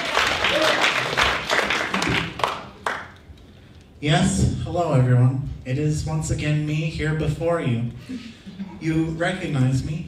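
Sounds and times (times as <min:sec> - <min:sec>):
audience applause: 0:00.0 - 0:03.1.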